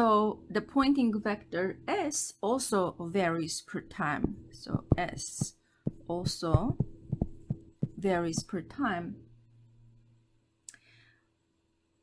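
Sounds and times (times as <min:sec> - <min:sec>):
faint low hum: 0:00.0 - 0:12.0
person speaking: 0:03.8 - 0:09.1.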